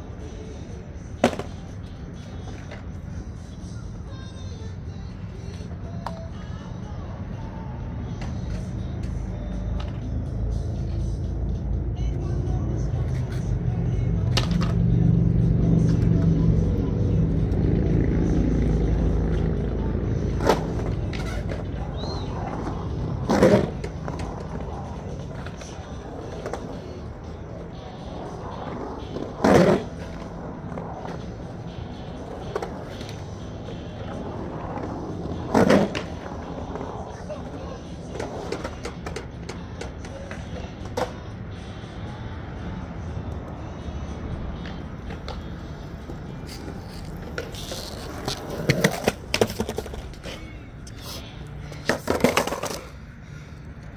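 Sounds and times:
skateboard wheels rolling on concrete: 0.0 - 53.9
skateboard knocking against concrete: 1.2 - 1.8, 14.3 - 14.8, 20.4 - 27.0, 27.6 - 31.4, 38.1 - 41.2, 44.6 - 50.4, 51.7 - 52.9.

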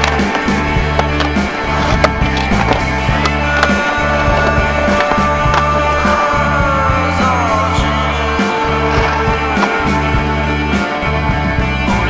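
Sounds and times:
skateboard clacking on ramp: 0.0 - 6.6
music with bass line: 0.0 - 12.0
skateboard wheels rolling on concrete: 0.0 - 12.0.

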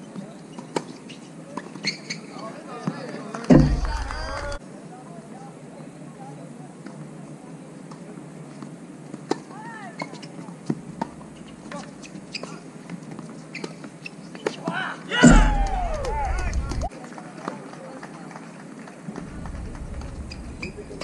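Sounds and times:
player shouting: 15.1 - 16.9
racket hitting tennis ball: 15.2 - 16.9, 19.2 - 21.0.

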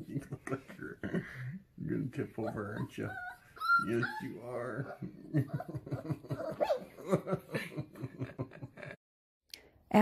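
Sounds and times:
person chuckling: 0.1 - 1.6, 4.8 - 9.0
puppy whimper: 2.3 - 7.0.

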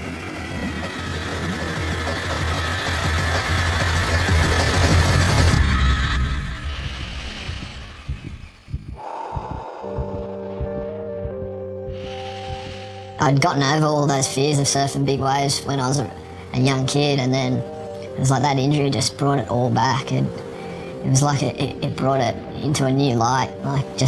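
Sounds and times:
soft music with held notes: 10.0 - 24.0.

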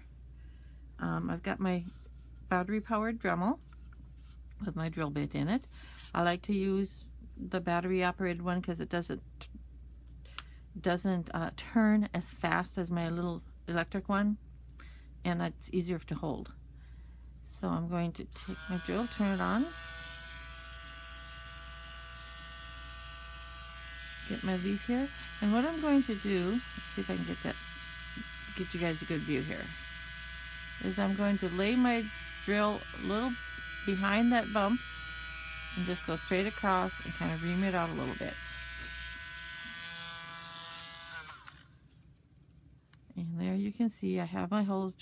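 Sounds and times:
rotary tool buzzing whine: 18.4 - 41.9.

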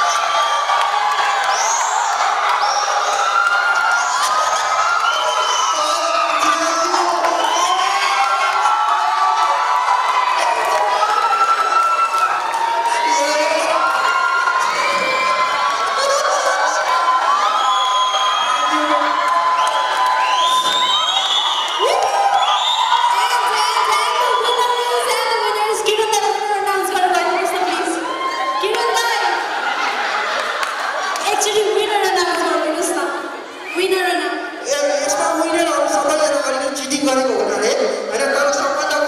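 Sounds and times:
whoops and calls: 0.0 - 8.9, 13.8 - 25.4
crowd cheering and shouting: 0.0 - 39.0.

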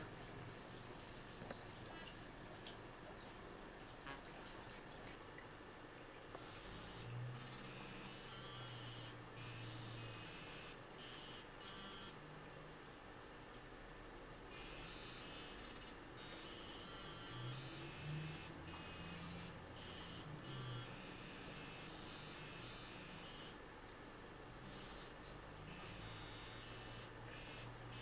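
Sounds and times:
faint electronic buzzing tones: 6.4 - 12.8, 14.5 - 23.7, 24.6 - 28.0.

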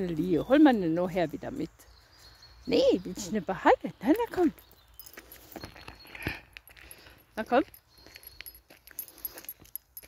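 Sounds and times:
footsteps on dry leaves: 4.5 - 7.3.

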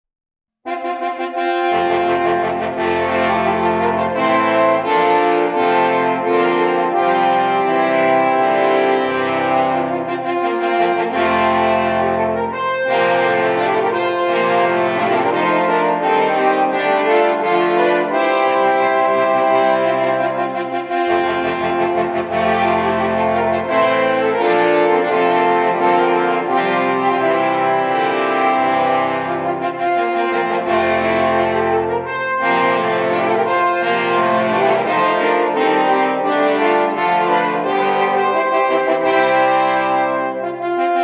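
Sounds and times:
french horns playing a fanfare: 0.7 - 41.0.

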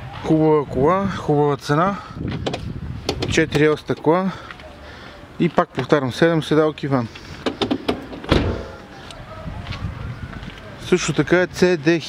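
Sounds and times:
car door shutting thud: 7.4 - 8.8.

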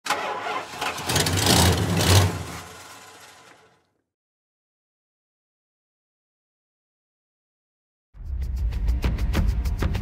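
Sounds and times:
car engine starting and revving: 0.0 - 3.8.

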